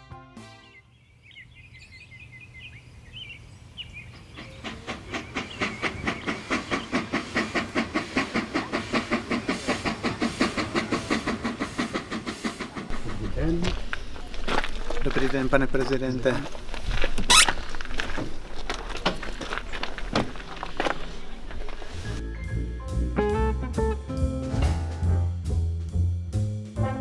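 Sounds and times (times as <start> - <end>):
steam locomotive chuffing: 4.1 - 16.6
heavy low rumble: 12.9 - 16.8.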